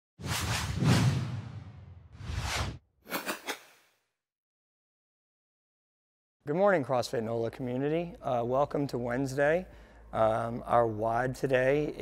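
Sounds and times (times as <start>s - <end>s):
whoosh swish: 0.2s - 3.7s.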